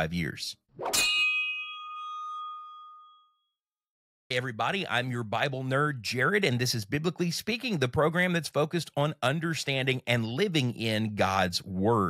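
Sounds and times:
bright bell-like ding: 0:00.8 - 0:03.5.

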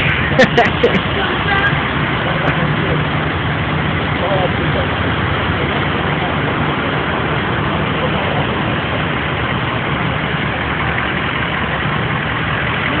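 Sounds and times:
constant wash of noise: 0:00.0 - 0:13.0
vehicle engine idling: 0:00.0 - 0:13.0.

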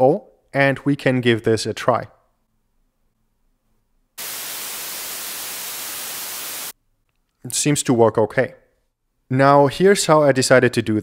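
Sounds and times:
white noise hiss: 0:04.2 - 0:06.8.

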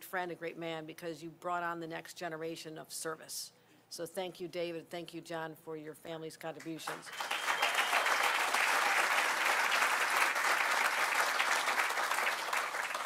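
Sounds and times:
audience applauding: 0:06.9 - 0:13.0.

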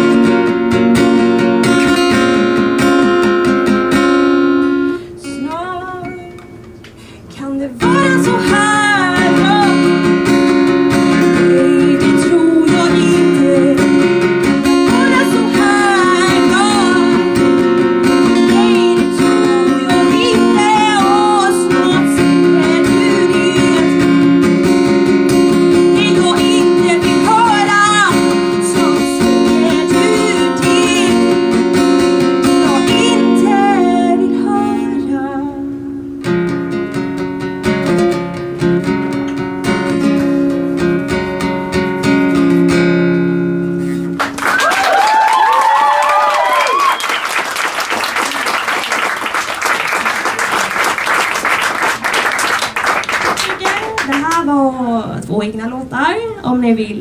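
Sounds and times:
acoustic guitar playing: 0:00.0 - 0:44.6, 0:46.2 - 0:55.3
woman singing: 0:05.2 - 0:06.5, 0:07.3 - 0:10.2, 0:11.0 - 0:24.4, 0:25.8 - 0:36.0
audience applause and cheers: 0:44.2 - 0:54.1.

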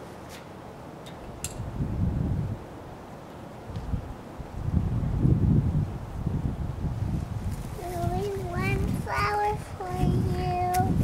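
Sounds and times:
wind buffeting microphone: 0:01.2 - 0:03.0, 0:03.7 - 0:11.0.

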